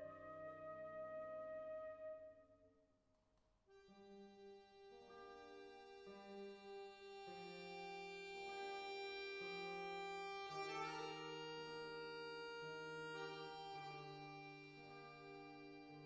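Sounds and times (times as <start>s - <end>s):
accordion playing chords: 0.0s - 0.3s, 3.8s - 16.0s.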